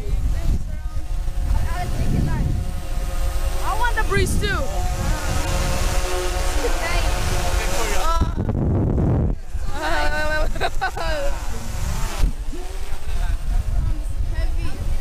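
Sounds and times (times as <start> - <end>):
steady hum: 0.0 - 15.0
wind rumbling on microphone: 0.0 - 15.0.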